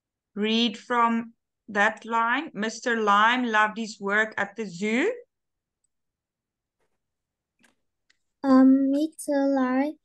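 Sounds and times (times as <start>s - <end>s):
woman speaking: 0.3s - 5.3s.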